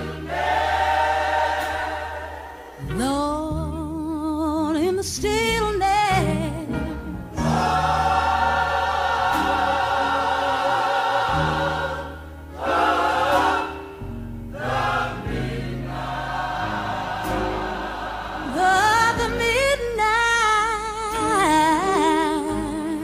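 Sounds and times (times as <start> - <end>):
gospel choir singing: 0.0 - 3.0, 7.3 - 20.1.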